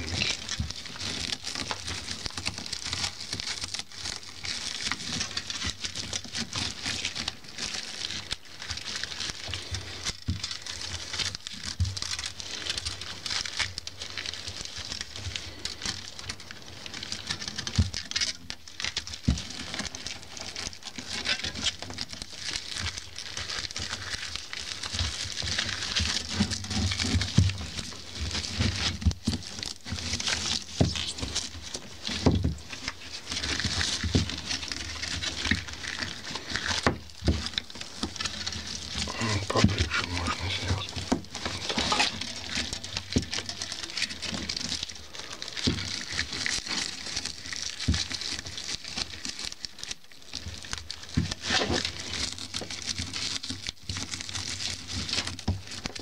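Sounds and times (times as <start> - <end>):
broom bristles rustling and crackling: 0.0 - 56.0.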